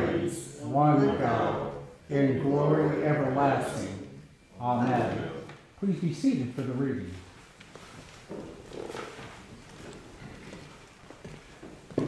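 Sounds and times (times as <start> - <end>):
people rustling and shuffling: 0.0 - 12.0.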